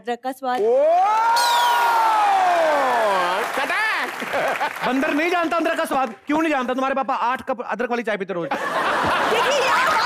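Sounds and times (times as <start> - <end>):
person whooping ooh: 0.6 - 3.2
audience clapping and cheering: 0.6 - 7.0, 9.0 - 10.0.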